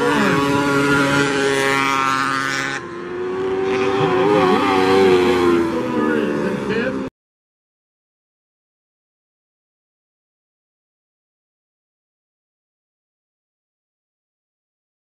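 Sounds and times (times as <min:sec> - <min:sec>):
racing car engines running hard: 0:00.0 - 0:07.1.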